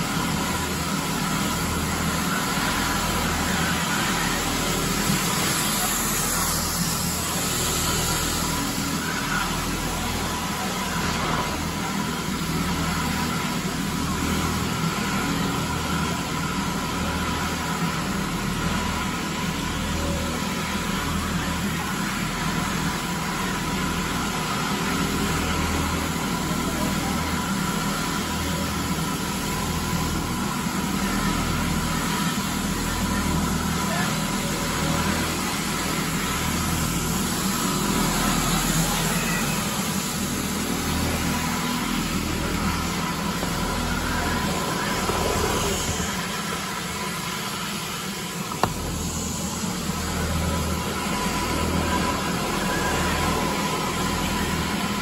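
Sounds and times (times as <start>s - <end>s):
floor scrubber motor drone: 0.0s - 55.0s
low wavering hum: 0.0s - 55.0s.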